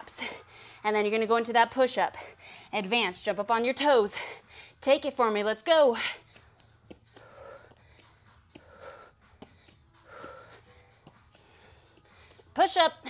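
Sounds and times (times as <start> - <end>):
woman breathing hard: 0.1 - 0.8, 2.1 - 2.7, 4.1 - 4.8, 6.0 - 12.5.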